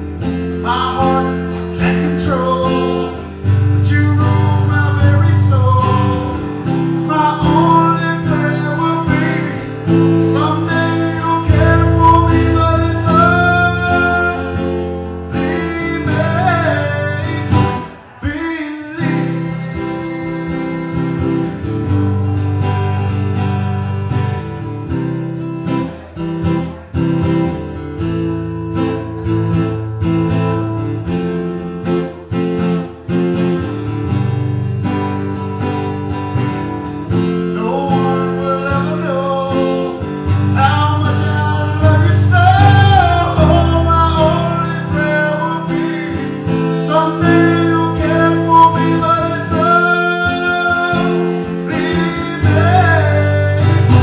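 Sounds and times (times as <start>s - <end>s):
acoustic guitar strumming: 0.0s - 54.0s
man singing: 0.2s - 22.8s, 37.1s - 54.0s.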